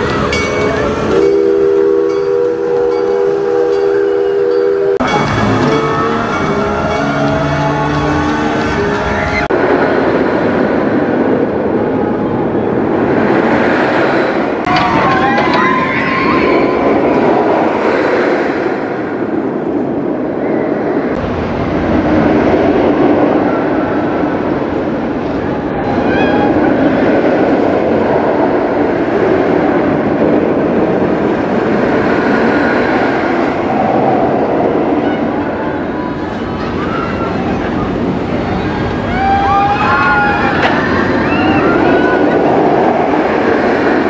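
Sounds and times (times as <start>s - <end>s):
roller coaster rumbling on track: 0.0s - 44.0s.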